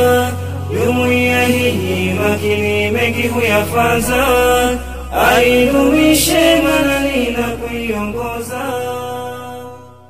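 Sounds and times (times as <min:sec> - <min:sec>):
sustained backing drone: 0:00.0 - 0:10.0.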